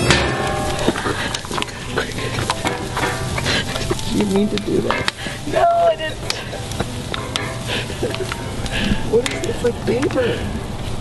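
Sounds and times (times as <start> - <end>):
campfire crackling: 0.0 - 11.0
food sizzling in a tin can: 0.0 - 11.0.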